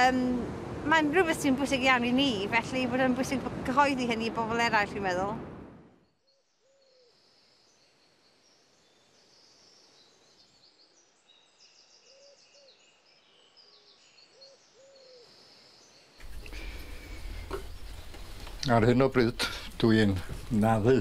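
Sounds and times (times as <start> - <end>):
songbird chirps and trills: 6.0 - 21.0.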